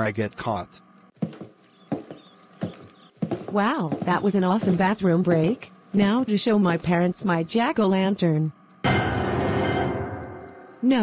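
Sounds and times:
heavy footsteps running: 0:01.2 - 0:05.7.

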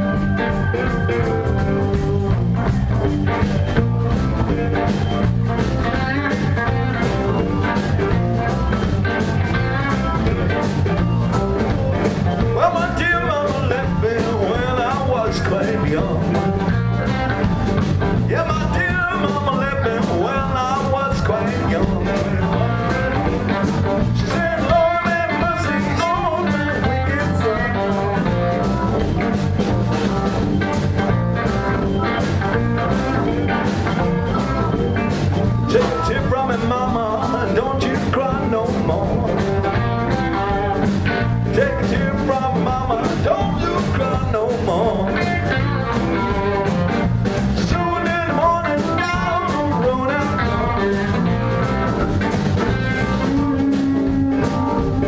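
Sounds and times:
live blues band playing: 0:00.0 - 0:55.0.

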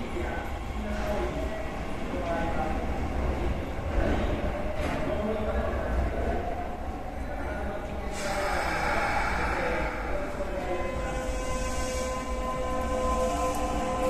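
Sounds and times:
train whine: 0:08.1 - 0:14.0.

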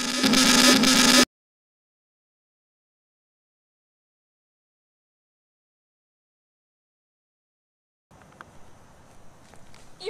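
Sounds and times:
harsh burst of distorted noise: 0:00.0 - 0:01.3.

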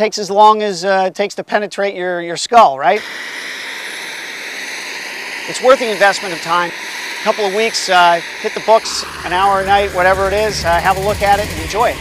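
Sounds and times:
model helicopter turbine whine: 0:02.9 - 0:12.0.

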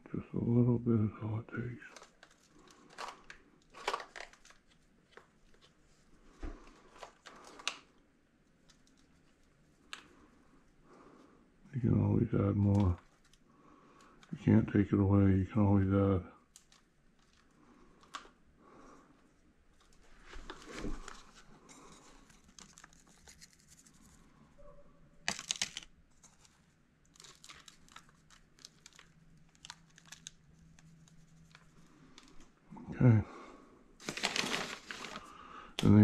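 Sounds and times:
plastic seed trays handled: 0:01.8 - 0:07.9
hands rustling potting soil: 0:34.0 - 0:35.4.

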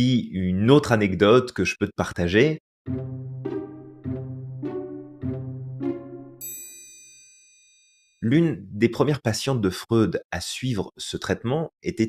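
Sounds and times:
music jingle: 0:02.9 - 0:07.6
bright high chime: 0:06.4 - 0:08.2.

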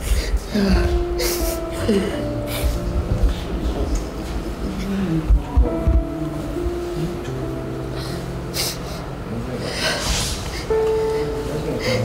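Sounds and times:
young man crying and sniffling: 0:00.0 - 0:02.9, 0:07.9 - 0:12.0
background music held tones: 0:00.0 - 0:12.0.

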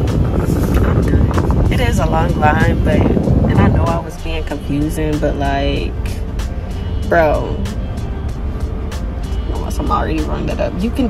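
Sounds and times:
background music: 0:00.0 - 0:11.0
car engine idling: 0:00.0 - 0:11.0
woman speaking: 0:01.7 - 0:06.2, 0:07.0 - 0:07.7, 0:09.5 - 0:11.0.

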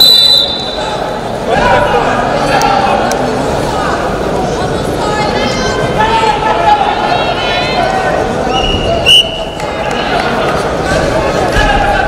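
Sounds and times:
referee's whistle: 0:00.0 - 0:00.9, 0:08.5 - 0:09.5
arena crowd: 0:00.0 - 0:12.0.

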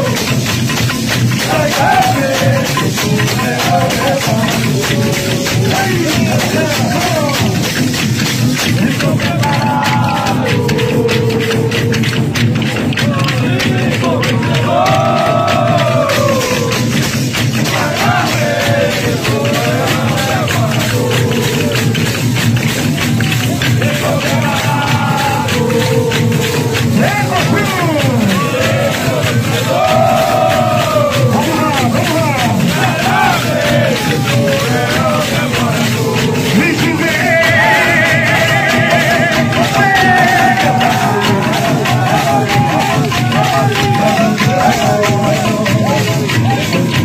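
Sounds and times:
crowd: 0:00.0 - 0:47.0
drumming: 0:00.0 - 0:47.0
fast percussion beat: 0:00.0 - 0:47.0
men singing and calling out: 0:00.0 - 0:47.0
wooden clappers clacking: 0:00.0 - 0:47.0.

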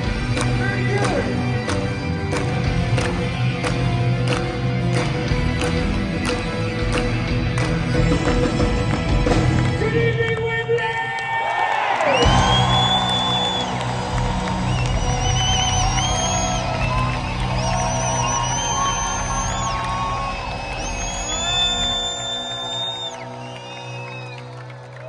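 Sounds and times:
live rock band: 0:00.0 - 0:09.9, 0:12.2 - 0:24.6
crowd cheering and clapping: 0:00.0 - 0:25.0.

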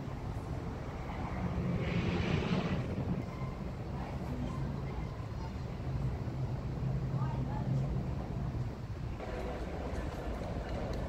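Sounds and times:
steady low rumble: 0:00.0 - 0:11.0
vehicle passing: 0:00.7 - 0:03.3.

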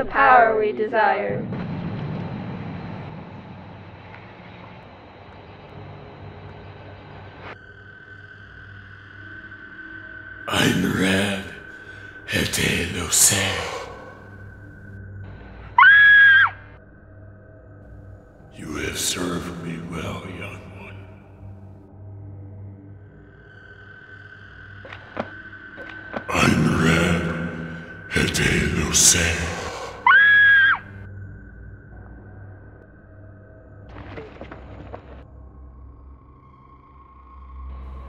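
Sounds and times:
woman screaming: 0:15.8 - 0:16.6, 0:30.1 - 0:30.8.

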